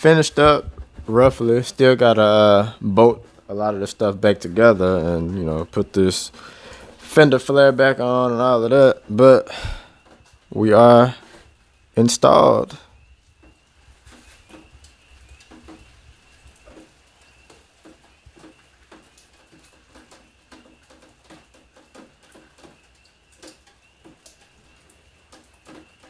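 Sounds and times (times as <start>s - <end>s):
soft clicks and ticks: 13.4s - 26.0s.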